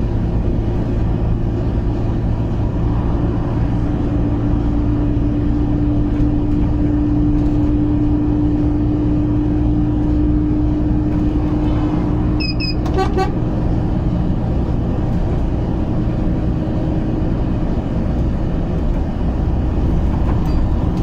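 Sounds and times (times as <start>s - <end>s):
truck engine drone in cab: 0.0s - 21.0s
short electronic beeps: 12.4s - 13.0s.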